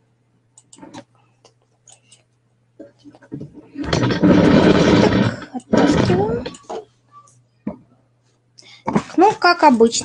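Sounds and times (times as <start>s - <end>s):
knitting machine carriage rasp: 3.8s - 6.6s.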